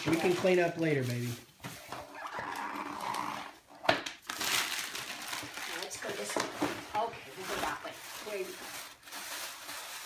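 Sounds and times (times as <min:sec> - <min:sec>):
cardboard box shifting on wooden floor: 0:06.0 - 0:08.4.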